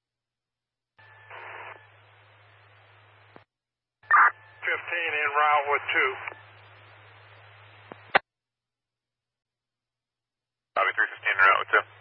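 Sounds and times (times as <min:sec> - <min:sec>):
radio static hiss: 0:01.0 - 0:03.4, 0:04.1 - 0:08.2, 0:10.8 - 0:12.0
radio noise burst: 0:01.3 - 0:01.9, 0:04.1 - 0:08.2, 0:10.8 - 0:12.0
radio voice: 0:04.1 - 0:06.4, 0:10.8 - 0:12.0
radio click: 0:06.1 - 0:06.4, 0:07.8 - 0:08.2.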